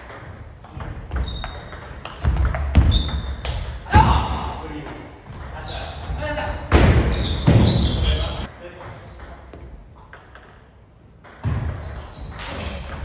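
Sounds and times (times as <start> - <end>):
ball bouncing: 0.0 - 4.1, 4.9 - 13.0
voices echoing in a hall: 3.8 - 9.6.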